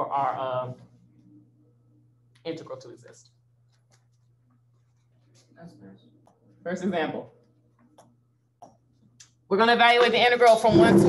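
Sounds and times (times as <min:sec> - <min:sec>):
low hum: 0:10.6 - 0:11.0.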